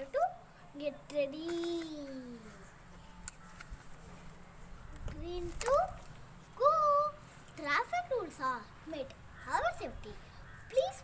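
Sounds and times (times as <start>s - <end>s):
young child's voice: 0.0s - 2.7s, 5.0s - 6.0s, 6.6s - 11.0s.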